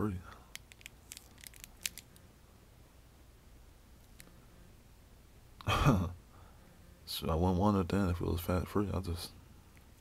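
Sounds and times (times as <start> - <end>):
candy wrapper tearing: 0.5 - 2.2.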